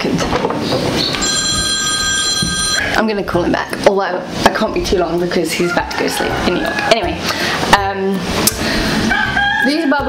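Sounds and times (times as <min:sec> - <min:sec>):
phone ringtone chord: 0:01.2 - 0:03.0.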